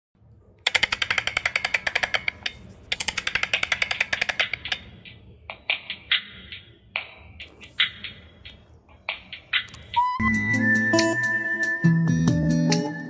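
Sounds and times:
rapid even clicking: 0.6 - 10.0.

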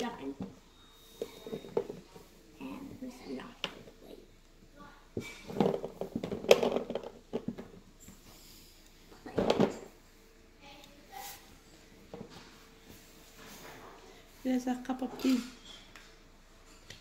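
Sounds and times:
objects knocking: 5.2 - 7.9, 9.2 - 10.0.

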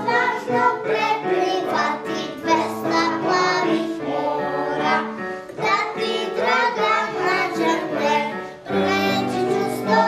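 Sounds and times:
children's choir singing: 0.0 - 10.0.

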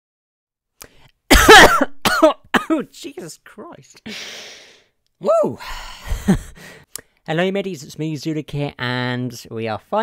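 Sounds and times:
person coughing: 1.3 - 2.9.

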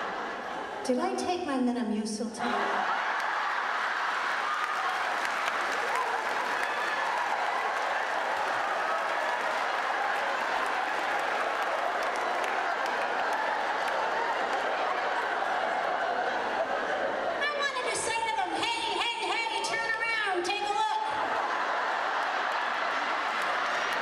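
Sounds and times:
audience applauding: 2.5 - 17.8, 21.1 - 24.0.

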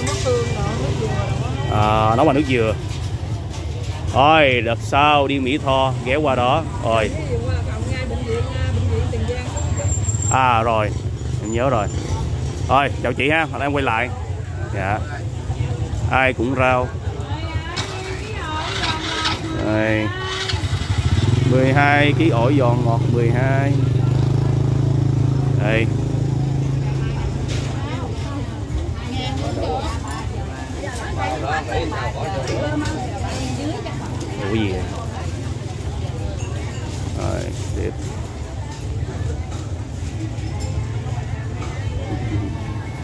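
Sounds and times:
market chatter: 0.0 - 43.0
people talking: 12.7 - 20.6, 26.6 - 43.0
motorbike engine humming: 15.3 - 29.2.

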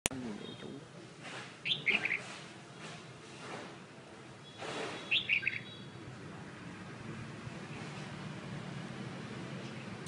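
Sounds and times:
songbird chirps: 0.2 - 3.0, 4.4 - 6.0.

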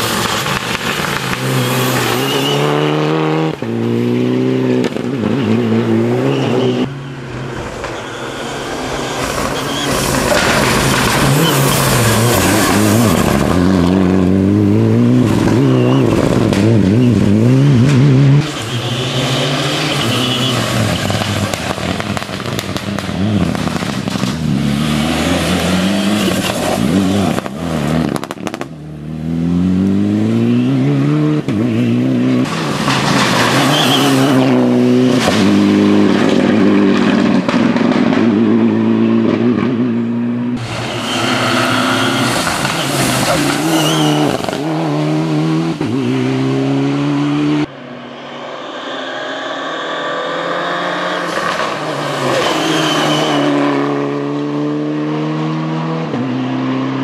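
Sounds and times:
rally car engine revving hard: 1.2 - 6.9, 9.8 - 47.7, 49.2 - 57.0.

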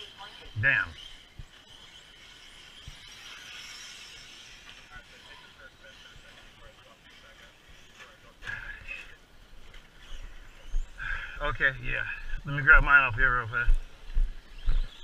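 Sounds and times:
radio-controlled car motor whine: 0.0 - 15.0.

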